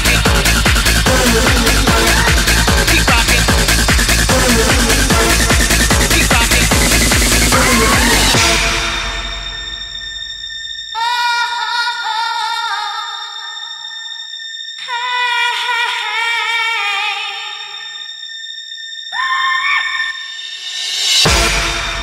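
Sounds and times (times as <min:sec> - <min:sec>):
singing long held notes: 0:00.0 - 0:22.0
thin high synth tones: 0:01.1 - 0:22.0.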